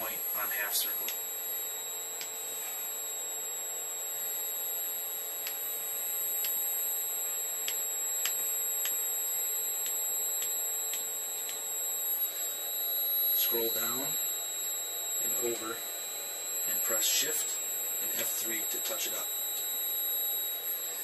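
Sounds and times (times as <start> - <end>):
high-pitched electrical whine: 0.0 - 21.0.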